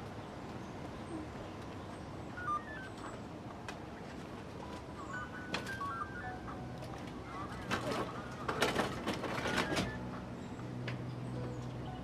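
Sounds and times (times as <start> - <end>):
birds chirping: 0.0 - 12.0.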